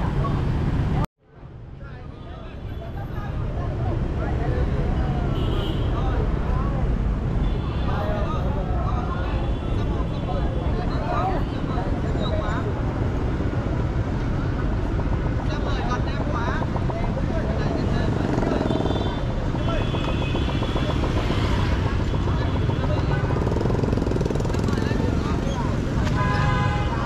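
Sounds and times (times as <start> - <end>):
engine and road rumble: 0.0 - 27.0
motorbike and scooter traffic: 0.0 - 27.0
people's voices in background: 0.0 - 27.0.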